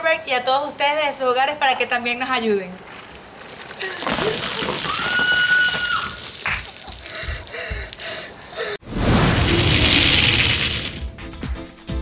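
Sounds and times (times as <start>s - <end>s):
ice water pouring and splashing: 3.4s - 11.0s
woman screaming: 4.7s - 6.4s.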